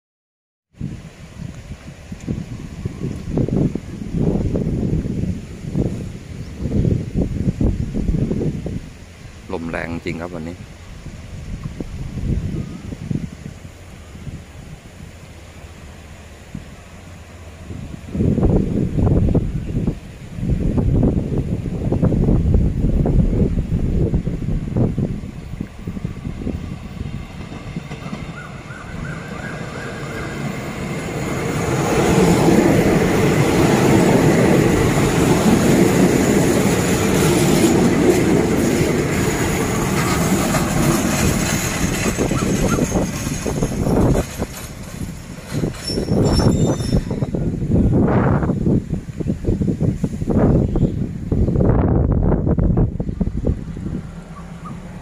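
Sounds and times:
wind buffeting microphone: 0:00.7 - 0:55.0
diesel train passing: 0:00.8 - 0:55.0.

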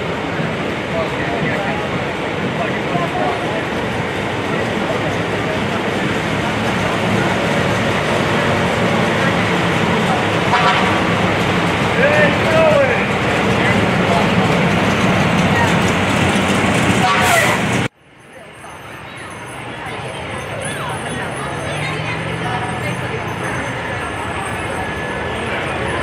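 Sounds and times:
fire engines running: 0:00.0 - 0:26.0
voices of onlookers: 0:00.0 - 0:26.0.

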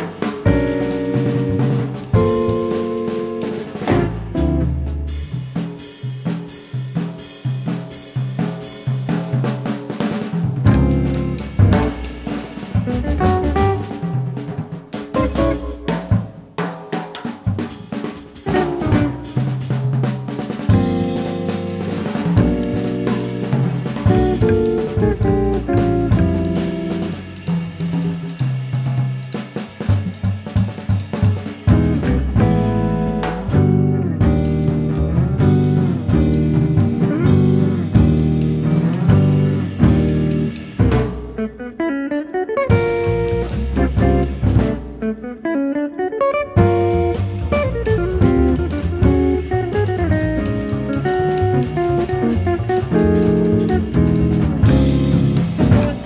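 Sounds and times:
bass: 0:00.0 - 0:56.0
drum kit: 0:00.0 - 0:56.0
jazz guitar: 0:00.0 - 0:56.0.

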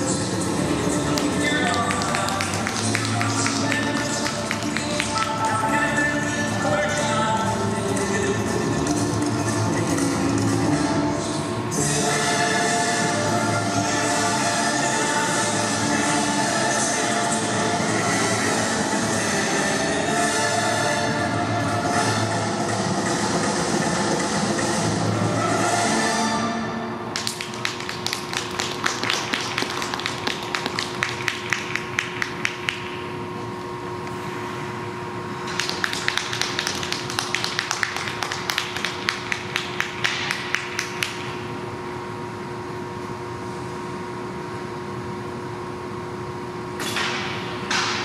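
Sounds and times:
faint steady hum: 0:00.0 - 0:48.0
audience hand clapping: 0:01.0 - 0:05.8, 0:27.2 - 0:33.0, 0:35.5 - 0:41.4.

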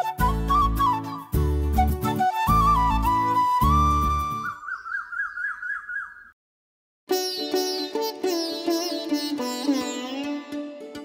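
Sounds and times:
flute warbling trill: 0:00.0 - 0:04.6.

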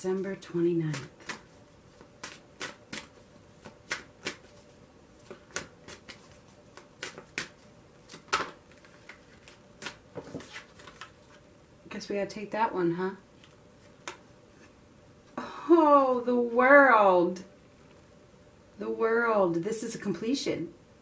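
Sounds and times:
cards being shuffled: 0:00.9 - 0:11.4, 0:13.4 - 0:14.7.

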